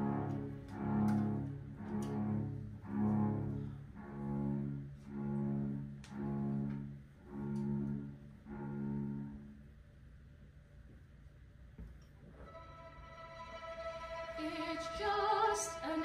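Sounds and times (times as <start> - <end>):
bowed strings playing chords: 0.0 - 9.6, 12.4 - 16.0.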